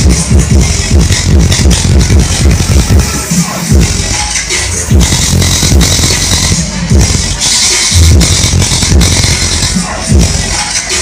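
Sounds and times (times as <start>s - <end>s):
loud dance music: 0.0s - 11.0s.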